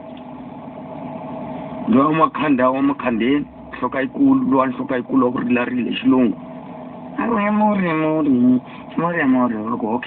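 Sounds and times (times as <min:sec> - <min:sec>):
machine humming: 0:00.0 - 0:10.0
man talking: 0:01.9 - 0:06.4, 0:07.2 - 0:10.0.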